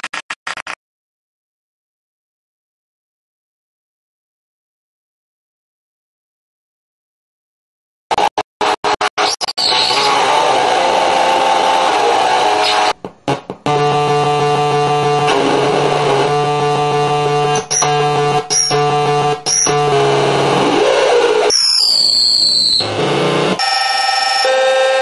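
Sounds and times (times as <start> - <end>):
droning synthesizer music: 13.6 - 21.4.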